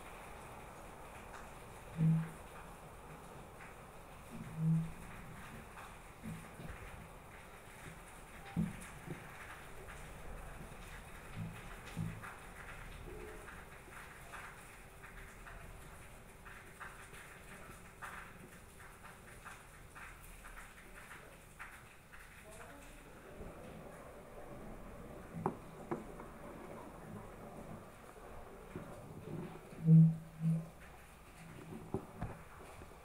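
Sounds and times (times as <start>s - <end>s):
soft knocks: 25.3s - 26.8s.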